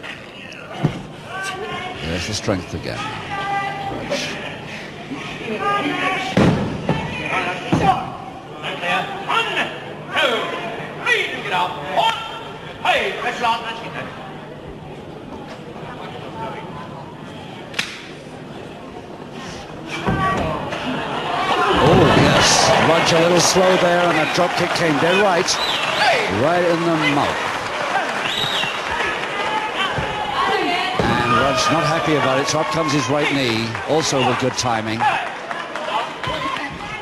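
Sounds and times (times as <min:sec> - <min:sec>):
hall background noise: 0:00.0 - 0:37.0
sharp skin slap: 0:17.7 - 0:18.1.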